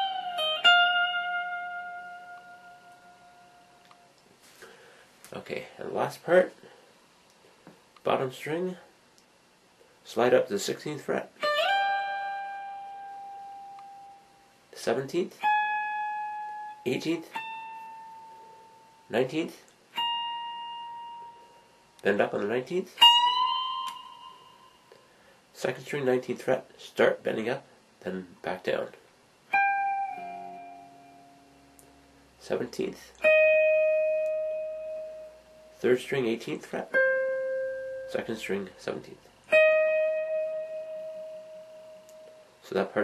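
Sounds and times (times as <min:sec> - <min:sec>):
electric guitar high note: 0:29.5 - 0:32.2.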